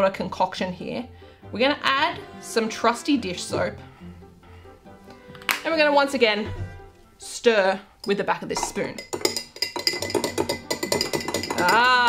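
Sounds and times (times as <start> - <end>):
background music: 0.0 - 12.0
metal spoon clinking in glass: 8.0 - 12.0.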